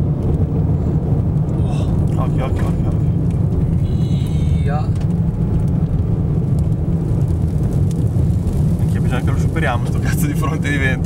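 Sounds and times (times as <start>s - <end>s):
gusty wind buffeting car: 0.0s - 11.0s
road noise inside car: 0.0s - 11.0s.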